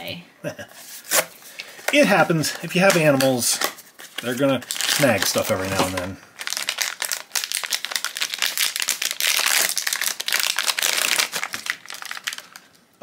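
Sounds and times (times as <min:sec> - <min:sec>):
foil pouch crinkling: 0:04.1 - 0:12.8.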